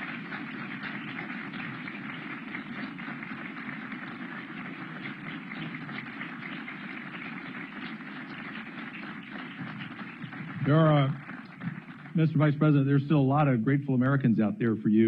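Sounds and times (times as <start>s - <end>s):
audience applauding: 0.0s - 13.8s.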